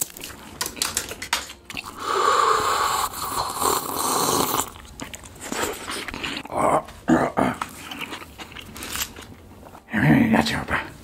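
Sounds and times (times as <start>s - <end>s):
slurping sips from paper cup: 1.8s - 4.8s.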